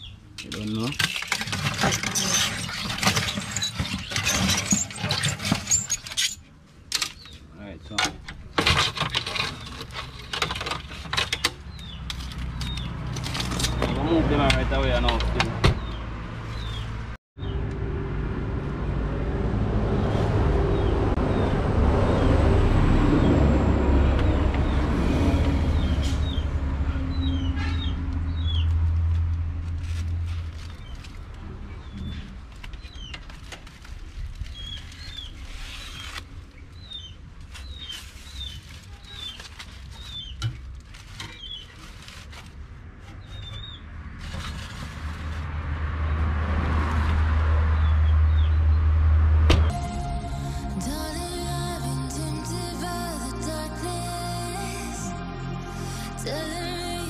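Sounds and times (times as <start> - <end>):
birds chirping: 11.2 - 17.6
loud low rumble: 48.7 - 57.0.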